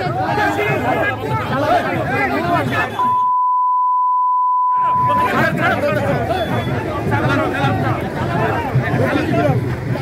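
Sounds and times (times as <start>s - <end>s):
men talking and shouting: 0.0s - 3.2s, 4.7s - 10.0s
high-pitched censor bleep: 3.0s - 5.3s.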